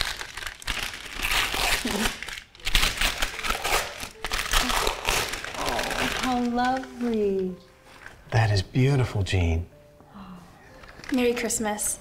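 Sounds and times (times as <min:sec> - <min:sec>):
wrapping paper crinkling: 0:00.0 - 0:08.2, 0:10.7 - 0:11.6.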